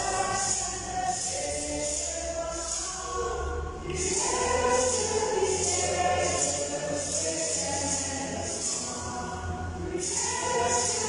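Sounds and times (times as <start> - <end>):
shaken hand percussion beat: 0.0 - 9.1, 9.9 - 11.0
church choir singing a hymn: 0.0 - 11.0.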